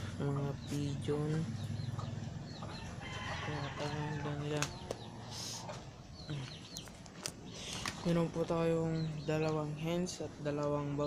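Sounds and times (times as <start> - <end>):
chickens clucking: 0.0 - 11.0
small birds chirping: 0.0 - 11.0.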